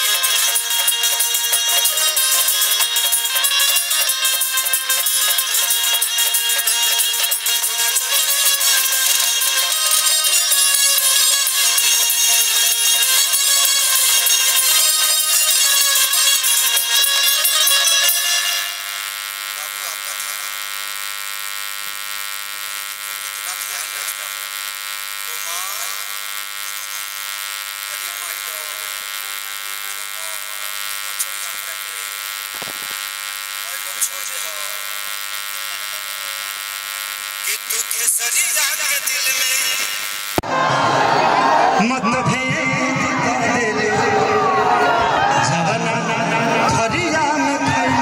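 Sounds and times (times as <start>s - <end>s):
loud stage music: 0.0s - 19.0s, 38.3s - 48.0s
steady electric buzz: 0.0s - 40.4s.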